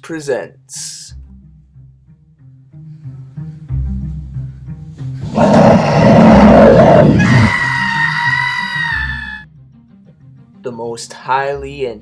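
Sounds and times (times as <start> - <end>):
bowed-string horror music: 1.1 - 9.5
person screaming: 5.3 - 9.4.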